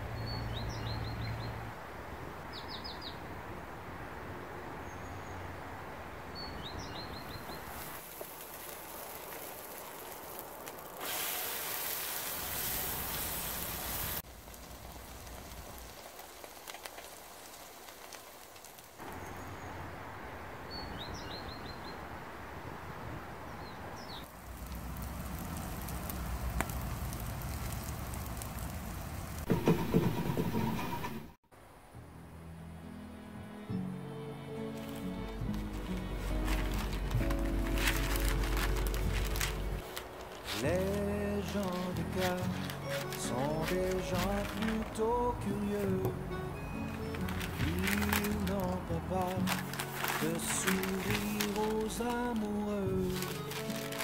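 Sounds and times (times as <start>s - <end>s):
crackles and pops of frying: 7.0s - 19.3s, 24.2s - 30.5s, 34.8s - 54.0s
oil sizzling in a frying pan: 7.7s - 19.0s, 24.3s - 29.8s.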